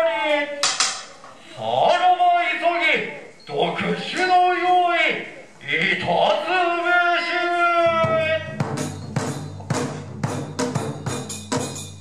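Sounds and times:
man chanting: 1.5s - 8.6s.

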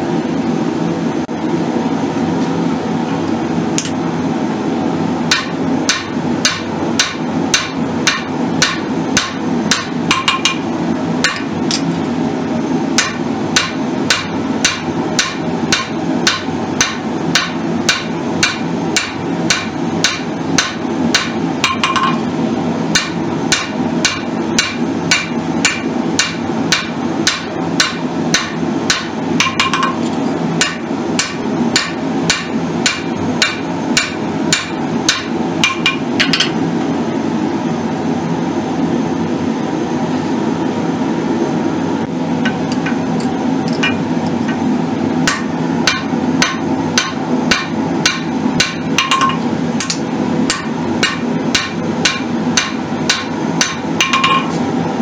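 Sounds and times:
steady low hum: 0.0s - 55.0s
hammer striking steel on anvil: 3.8s - 4.0s, 5.3s - 12.0s, 12.9s - 22.3s, 22.9s - 36.6s, 42.4s - 54.6s.

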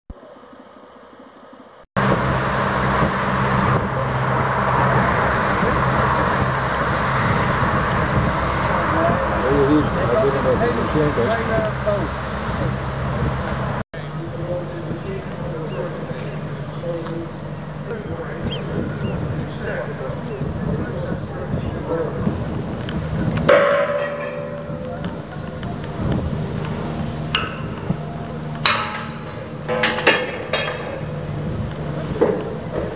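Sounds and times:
low rumble: 0.1s - 13.8s
boat wake rushing: 0.1s - 32.9s
outboard motor running: 1.7s - 32.9s
ship's horn: 2.0s - 13.8s.

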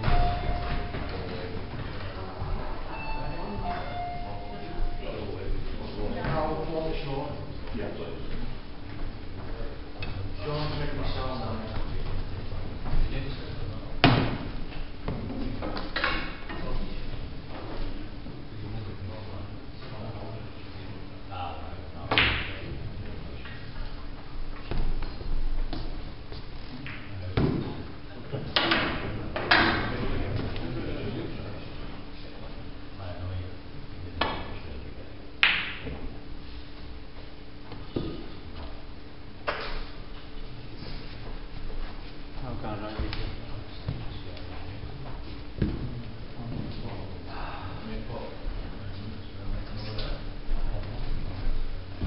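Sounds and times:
low background chatter: 0.0s - 14.6s
faint steady hum: 0.0s - 52.0s.

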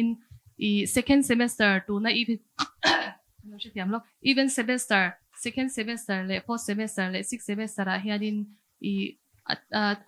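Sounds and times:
woman speaking into a microphone: 0.0s - 2.4s, 3.5s - 10.0s.

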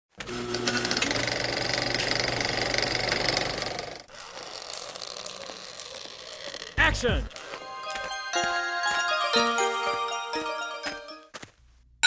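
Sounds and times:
rapid mechanical rattling: 0.4s - 4.2s.

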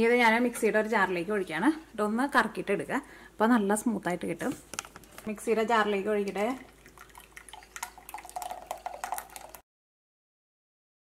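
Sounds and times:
liquid pouring into metal pot: 6.2s - 9.6s.

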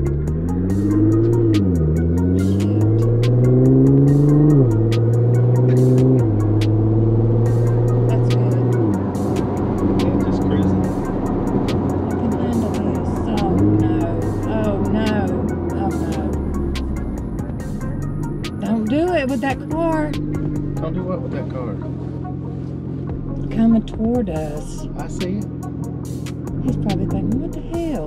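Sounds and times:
car engine accelerating: 0.0s - 28.0s.

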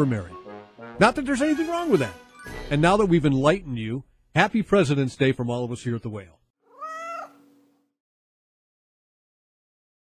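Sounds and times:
cat meowing: 6.7s - 7.6s.

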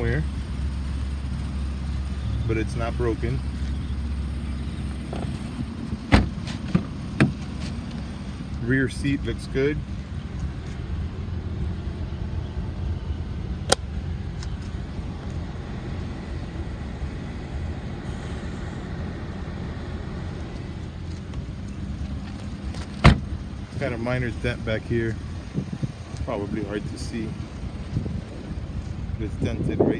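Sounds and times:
car engine idling with misfire: 0.0s - 29.9s
car door shutting: 6.1s - 7.8s, 22.7s - 23.3s
sharp click: 13.7s - 14.6s.

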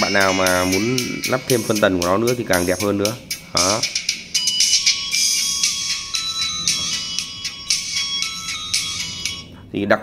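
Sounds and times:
tinny music through tweeter: 0.0s - 9.7s.

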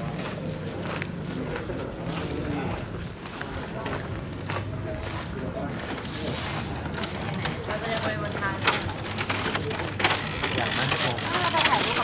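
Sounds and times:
distant people talking: 0.0s - 12.0s
outdoor background noise: 0.0s - 12.0s.

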